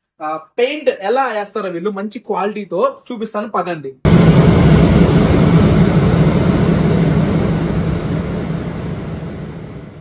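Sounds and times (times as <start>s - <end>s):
rumble of booth airflow: 4.1s - 10.0s.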